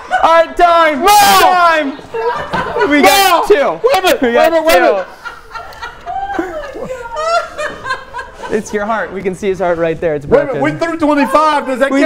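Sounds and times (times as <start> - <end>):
men laughing: 1.2 - 9.4.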